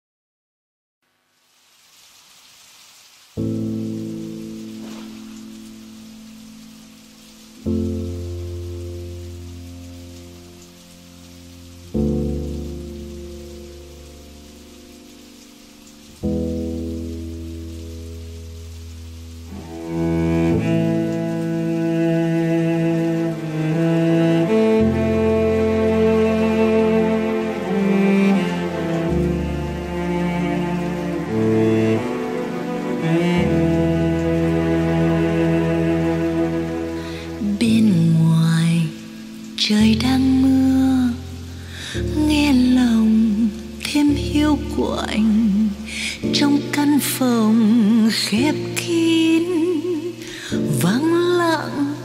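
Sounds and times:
steady rain falling: 1.0 - 52.0
slow instrumental ballad: 3.4 - 52.0.

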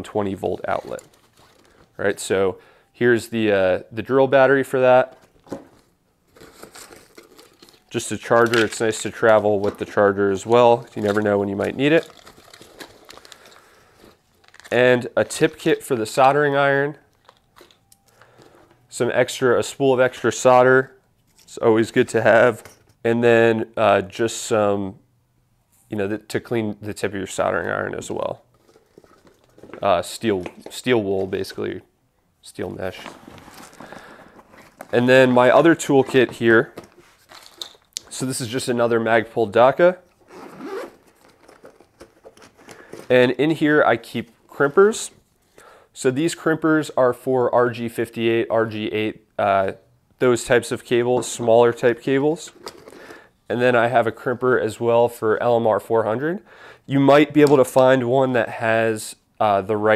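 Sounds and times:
faint case handling noise: 5.1 - 10.0, 28.5 - 31.5, 32.8 - 38.1
small tools clicking and rustling: 36.8 - 38.1, 41.0 - 43.1
zipper pulled open: 40.2 - 41.5.

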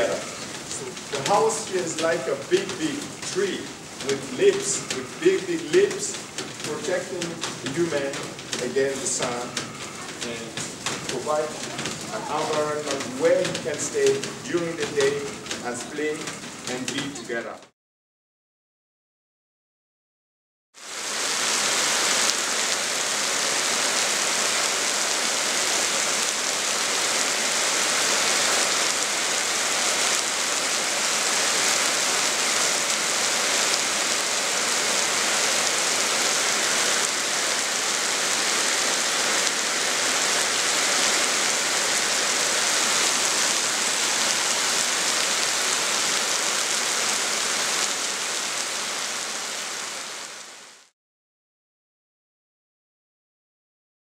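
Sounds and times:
heavy rain falling: 0.0 - 17.7, 20.8 - 50.9.

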